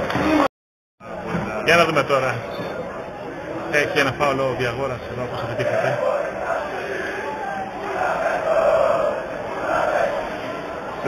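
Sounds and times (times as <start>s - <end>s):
football crowd chanting: 5.1s - 11.0s.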